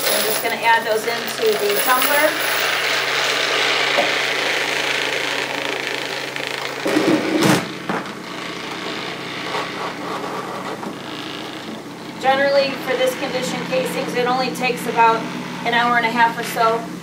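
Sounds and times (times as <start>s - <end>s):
metal casings rattling: 0.0s - 3.2s
tumbler motor hum: 0.0s - 17.0s.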